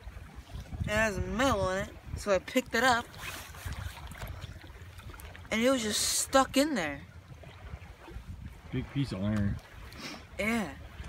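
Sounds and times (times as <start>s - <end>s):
wind rumbling on microphone: 0.0s - 11.0s
faint hiss of open water: 7.7s - 11.0s.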